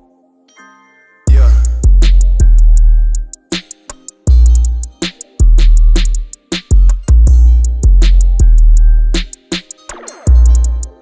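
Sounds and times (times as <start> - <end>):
deep bass note: 1.3 - 3.2
hi-hats ticking: 1.3 - 11.0.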